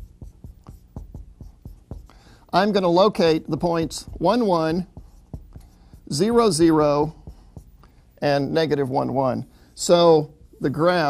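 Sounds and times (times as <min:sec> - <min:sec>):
marker scratching on a board: 0:00.0 - 0:11.0.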